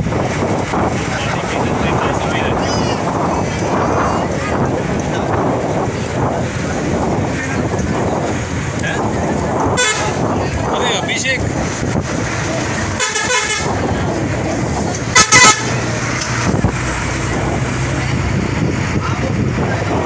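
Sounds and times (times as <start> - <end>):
road noise of moving vehicle: 0.0 - 20.0
vehicle horn tooting: 9.7 - 10.3, 13.0 - 13.9, 15.1 - 15.8.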